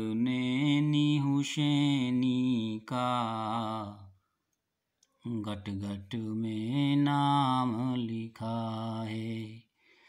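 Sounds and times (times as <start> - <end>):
man singing unaccompanied: 0.0 - 4.2, 5.2 - 9.7.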